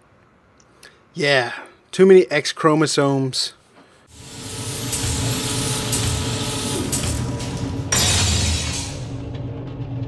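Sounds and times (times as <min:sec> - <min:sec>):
mechanical whirring and humming: 0:04.1 - 0:10.0
loud hit: 0:07.0 - 0:09.6.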